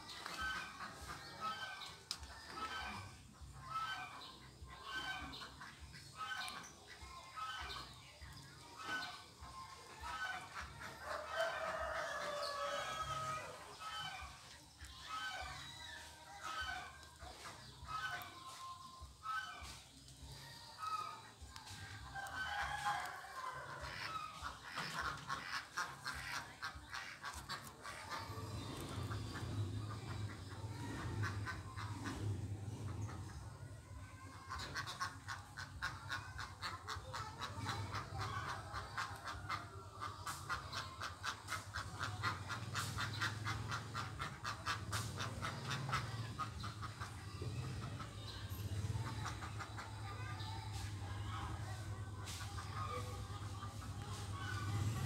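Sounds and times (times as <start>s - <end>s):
chickens clucking: 0.0s - 55.0s.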